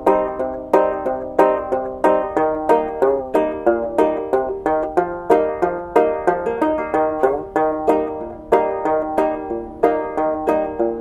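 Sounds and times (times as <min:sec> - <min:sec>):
banjo plucked notes: 0:00.0 - 0:11.0.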